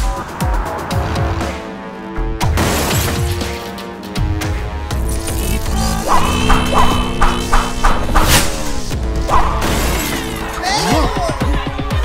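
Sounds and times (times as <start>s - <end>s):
cartoon music with low beat: 3.8s - 12.0s.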